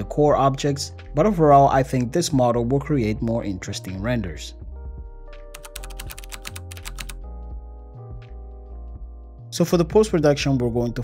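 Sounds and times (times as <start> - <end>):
background music: 0.0 - 11.0
keyboard typing: 5.5 - 7.2.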